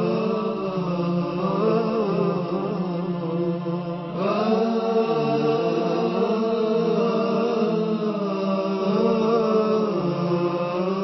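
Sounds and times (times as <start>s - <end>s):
wordless vocal chant: 0.0s - 11.0s.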